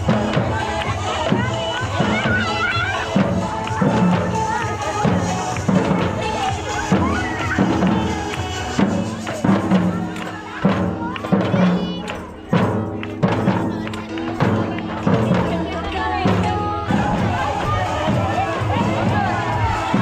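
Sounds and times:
crowd voices: 0:00.0 - 0:20.0
frame drum: 0:00.0 - 0:20.0
surdo drums beaten with mallets: 0:00.0 - 0:20.0.

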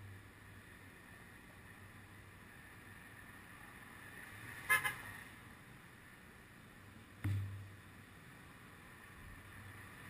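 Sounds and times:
faint city traffic: 0:00.0 - 0:10.0.

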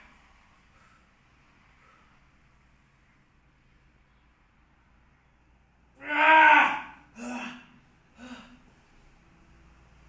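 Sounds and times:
man groaning with effort: 0:06.0 - 0:08.6.

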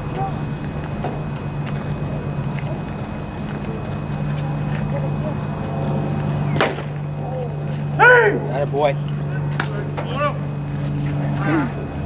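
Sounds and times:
steady low hum: 0:00.0 - 0:12.0
baseball caught in glove pop: 0:06.6 - 0:06.9
loud drawn-out shouting: 0:07.1 - 0:08.7, 0:11.2 - 0:12.0
short shouts: 0:08.0 - 0:08.5.

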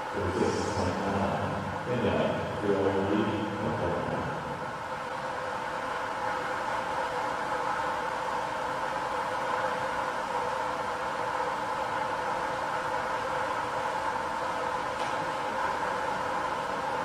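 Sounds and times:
indoor pool hall hiss: 0:00.0 - 0:17.0.

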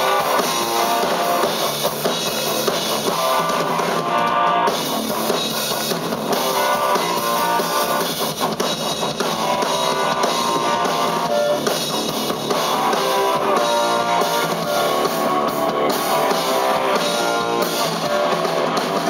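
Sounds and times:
bass guitar: 0:00.0 - 0:19.0
drum kit: 0:00.0 - 0:19.0
electric guitar: 0:00.0 - 0:19.0.

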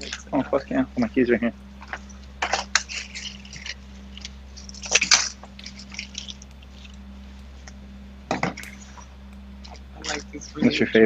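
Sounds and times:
steady low hum: 0:00.0 - 0:11.0
clothing rustling on microphone: 0:01.6 - 0:07.9.

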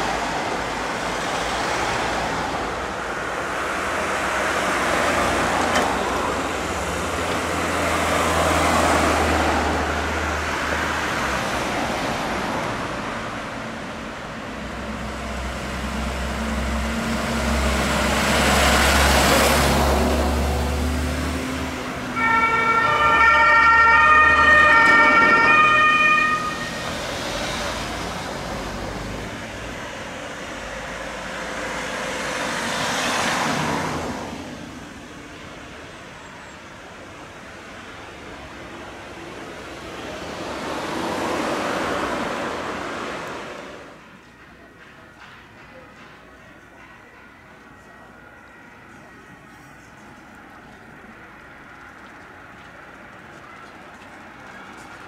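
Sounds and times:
vehicles driving past: 0:00.0 - 0:55.0
two-tone siren: 0:22.2 - 0:26.9.

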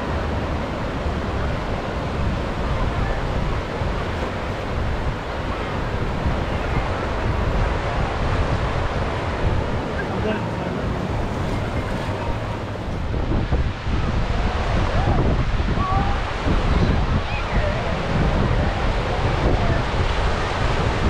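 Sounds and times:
sea waves washing on beach: 0:00.0 - 0:21.0
wind rumbling on microphone: 0:00.0 - 0:21.0.

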